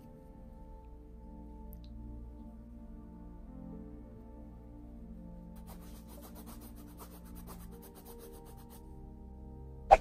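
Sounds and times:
paintbrush scrubbing on canvas: 0:05.6 - 0:08.8.

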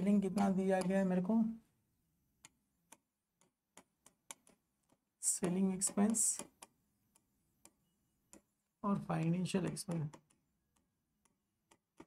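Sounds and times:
pen tip tapping on glass: 0:00.0 - 0:01.2, 0:02.4 - 0:08.5, 0:09.2 - 0:12.0.

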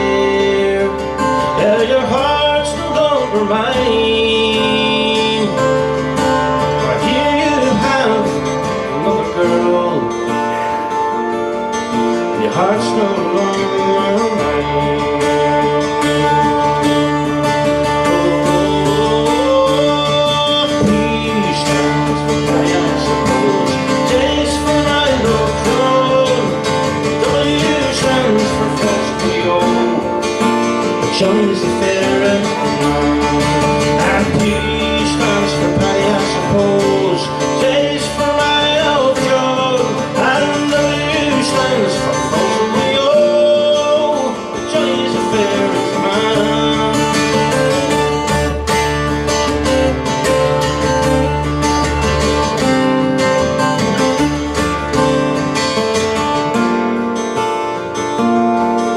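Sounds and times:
picked acoustic guitar melody: 0:00.0 - 0:58.9
strummed acoustic guitar accompaniment: 0:00.0 - 0:58.9.

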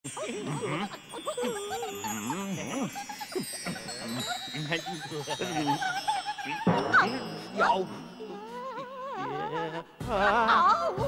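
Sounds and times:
twinkling chime tinkle: 0:00.1 - 0:09.5
playful wordless voice sounds: 0:00.1 - 0:11.0.

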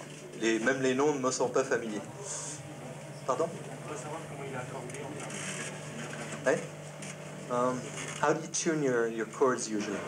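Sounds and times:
electrical hum with hiss: 0:00.0 - 0:10.0
quiet murmuring voices: 0:00.0 - 0:10.0.

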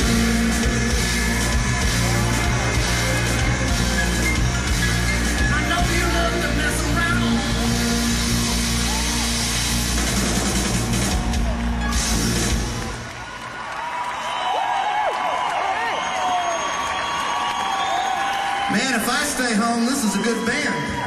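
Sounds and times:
live band playing rhythm and blues: 0:00.0 - 0:13.2
audience cheering and whooping: 0:00.0 - 0:21.0.

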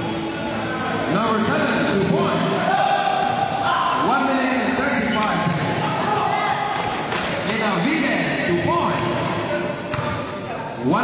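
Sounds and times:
voices shouting in echoing hall: 0:00.0 - 0:11.0.

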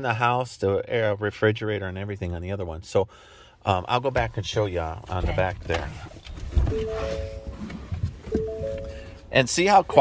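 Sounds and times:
car warning chime: 0:06.7 - 0:09.4.

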